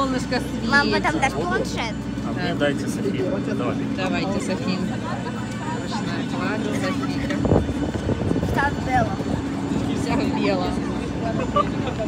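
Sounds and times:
people talking: 0.0s - 7.8s, 8.4s - 12.0s
parked airliner humming: 0.0s - 12.0s.

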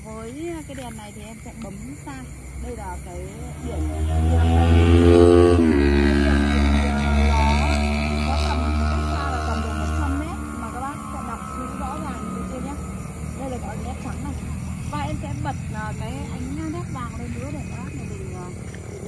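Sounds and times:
vehicle engine passing by: 3.0s - 19.0s.

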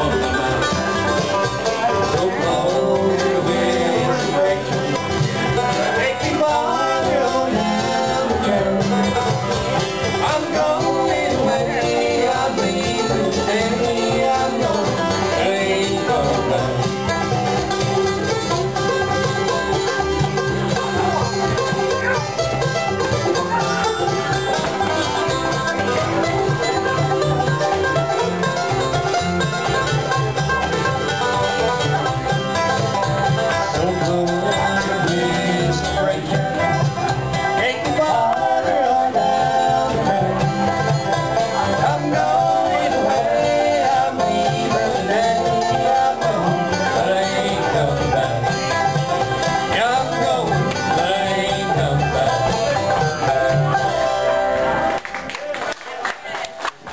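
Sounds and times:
banjo picking: 0.0s - 56.9s
bluegrass band playing: 0.0s - 56.9s.

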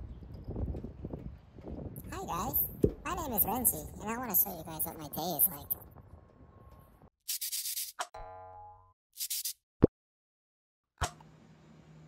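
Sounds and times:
scratchy scribbling sound effect: 7.3s - 8.0s, 9.2s - 9.6s.

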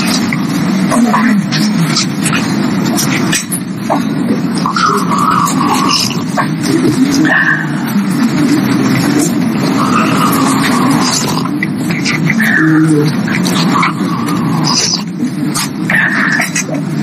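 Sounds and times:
babble of many voices: 0.0s - 17.0s.

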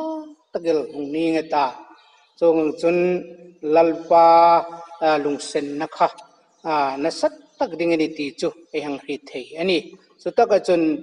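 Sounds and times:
man reading aloud: 0.0s - 11.0s.

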